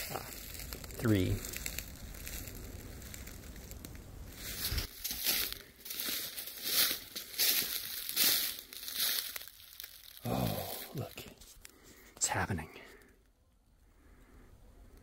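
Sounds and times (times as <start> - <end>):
footsteps crunching through dry leaves: 0.0 - 11.7
short voice sound: 10.2 - 11.3.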